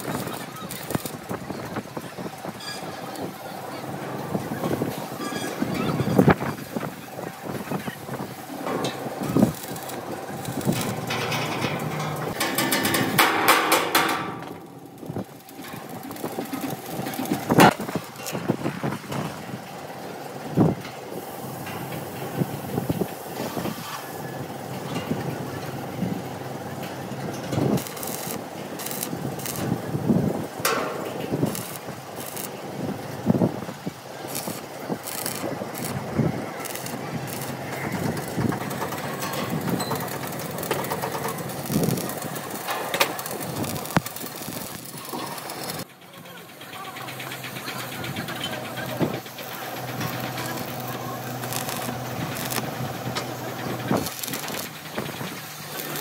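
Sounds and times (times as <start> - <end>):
welding arc crackling: 0.0 - 45.9, 47.2 - 56.0
sharp metallic knocks: 10.8 - 14.8.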